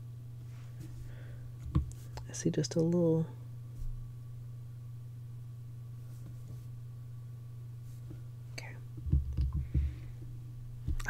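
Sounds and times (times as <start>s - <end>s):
low electrical hum: 0.0s - 11.0s
person breathing okay softly: 0.6s - 1.5s.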